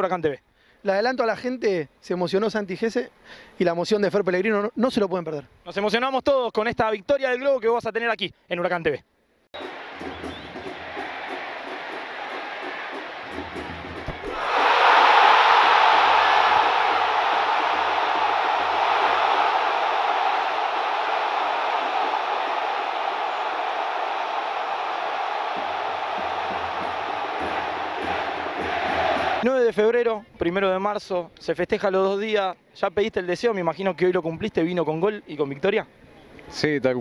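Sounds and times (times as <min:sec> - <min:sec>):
stadium crowd cheering: 0:09.6 - 0:29.5.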